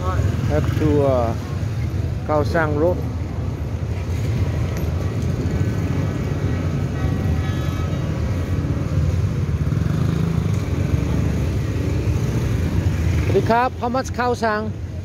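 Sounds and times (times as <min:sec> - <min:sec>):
scooters and cars passing: 0:00.0 - 0:15.0.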